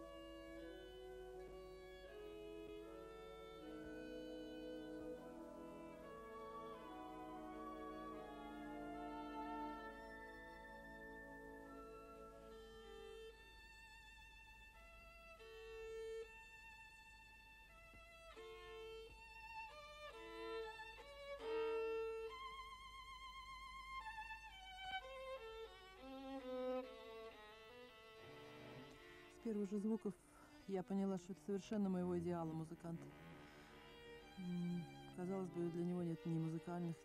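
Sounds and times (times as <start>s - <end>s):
solo violin melody: 0.0s - 37.0s.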